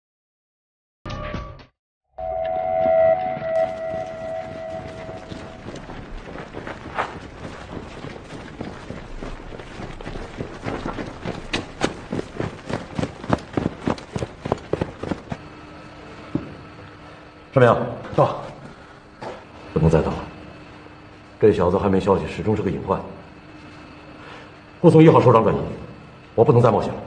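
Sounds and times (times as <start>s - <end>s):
siren steady tone: 2.2s - 6.6s.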